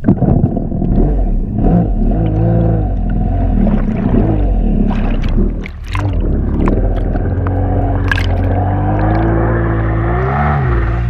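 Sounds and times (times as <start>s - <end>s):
jet ski engine running: 0.0s - 11.0s.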